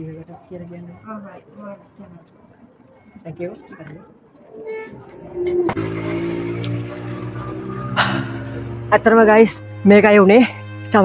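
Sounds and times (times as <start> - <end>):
dove cooing: 4.0 - 5.8
sudden sweep: 4.5 - 8.6
background music with held notes: 4.5 - 11.0.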